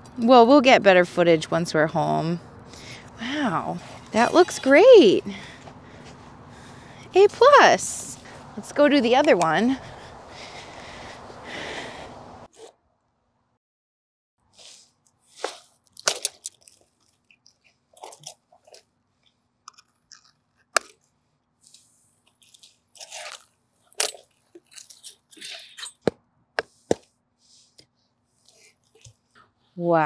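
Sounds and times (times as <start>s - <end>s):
sand crunching and scraping: 3.3s - 6.4s, 14.5s - 16.7s.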